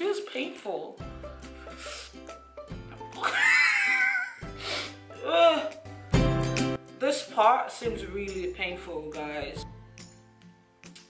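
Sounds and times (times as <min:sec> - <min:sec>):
background music: 0:00.0 - 0:11.0
woman whimpering: 0:03.2 - 0:05.8.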